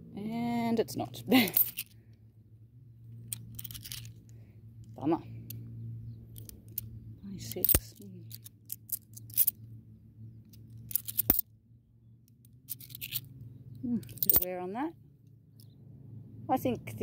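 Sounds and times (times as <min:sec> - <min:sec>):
low steady hum: 0:00.0 - 0:17.0
coins clinking: 0:01.4 - 0:02.0, 0:03.2 - 0:04.1, 0:06.3 - 0:09.6, 0:10.5 - 0:11.4, 0:12.6 - 0:14.5.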